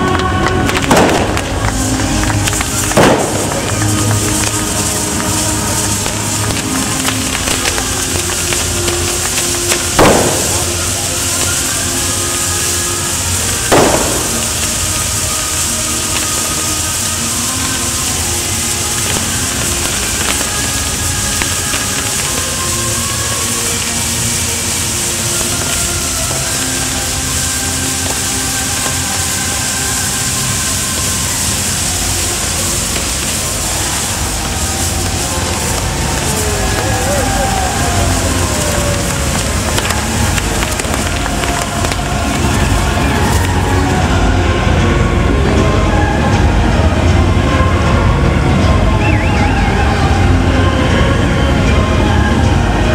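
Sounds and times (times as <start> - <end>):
crowd voices: 0.0 - 52.9
fireworks hiss and crackle: 0.0 - 52.9
music: 0.0 - 52.9.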